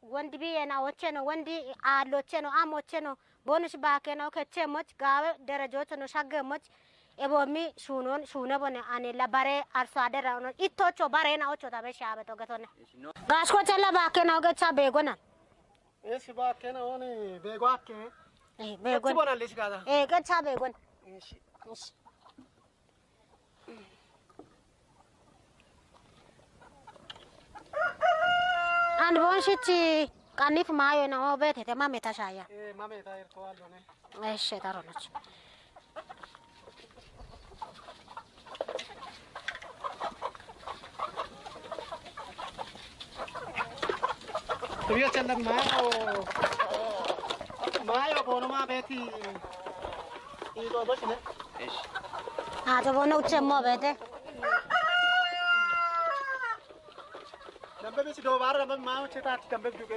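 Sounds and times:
rooster crowing: 0:27.7 - 0:29.8, 0:54.4 - 0:56.6.

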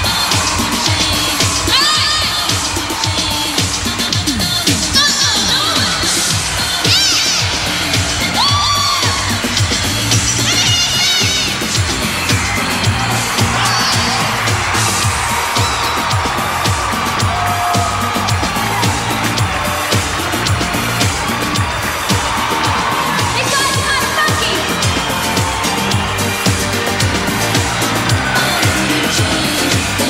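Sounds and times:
crowd cheering: 0:00.0 - 0:30.0
live pop music with beat: 0:00.0 - 0:30.0
shrill screams and whoops: 0:08.4 - 0:09.5, 0:12.2 - 0:29.8.

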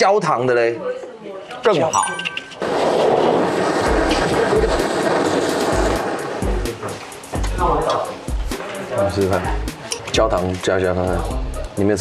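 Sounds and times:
kitchen torch hissing: 0:02.6 - 0:11.2.

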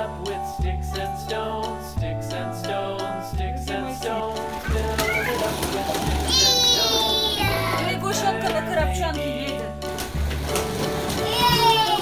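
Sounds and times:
children's music: 0:00.0 - 0:12.0.

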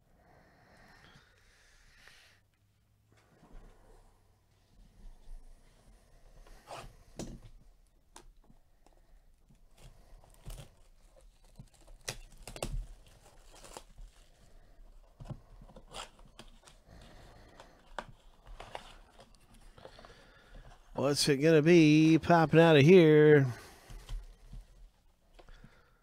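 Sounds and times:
cardboard box tearing and crinkling: 0:10.2 - 0:14.5.

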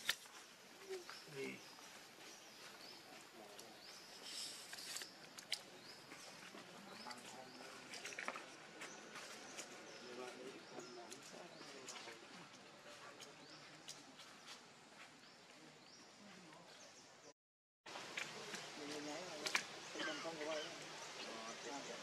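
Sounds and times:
distant people talking: 0:02.6 - 0:14.4, 0:18.1 - 0:22.0.

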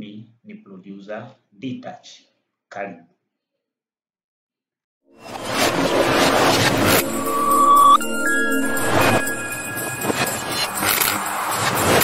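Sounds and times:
whoosh effects: 0:05.2 - 0:12.0.

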